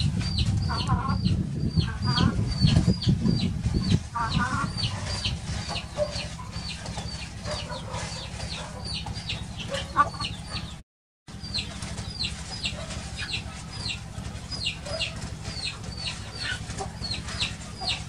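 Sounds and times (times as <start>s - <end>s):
low rumble: 0.0s - 7.2s
hen clucking: 0.0s - 18.0s.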